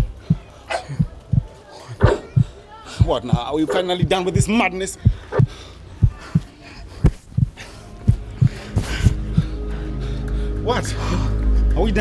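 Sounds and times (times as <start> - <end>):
heartbeat thumps: 0.0 - 12.0
sustained music tones: 7.6 - 12.0.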